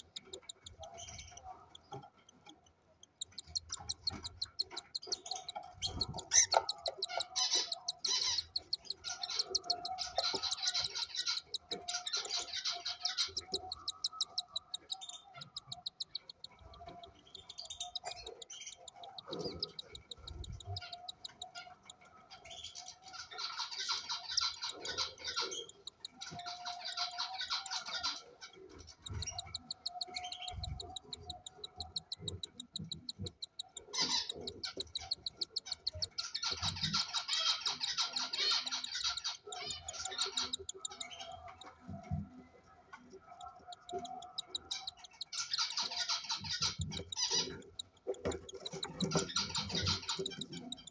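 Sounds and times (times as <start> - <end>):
cockatiel chick begging calls: 3.2 - 21.8, 29.0 - 41.2, 44.0 - 50.9.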